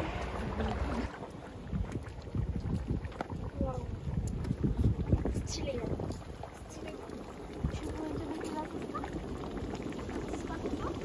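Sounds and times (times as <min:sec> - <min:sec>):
hot mud bubbling: 0:00.0 - 0:11.0
wind on microphone: 0:00.0 - 0:11.0.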